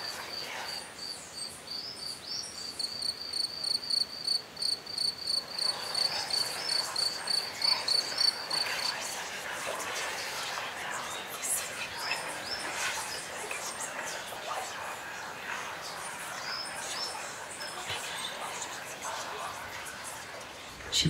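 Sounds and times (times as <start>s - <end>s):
cricket chirping: 0.0s - 9.0s.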